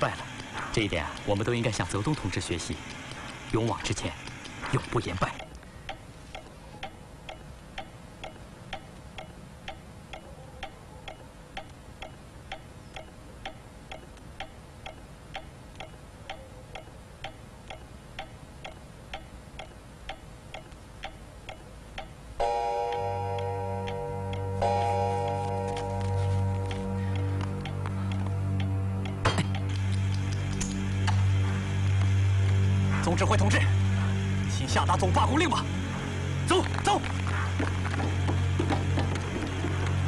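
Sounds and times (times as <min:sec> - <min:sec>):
pendulum clock ticking: 0:00.0 - 0:40.0.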